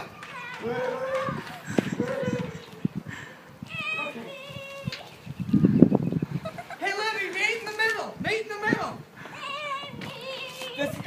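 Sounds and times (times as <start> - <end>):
high-pitched voices calling out: 3.6 - 5.9, 8.7 - 11.0.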